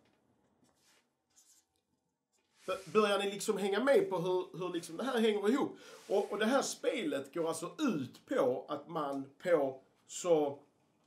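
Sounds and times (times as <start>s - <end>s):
marker strokes on paper: 2.4s - 3.3s, 5.8s - 6.7s.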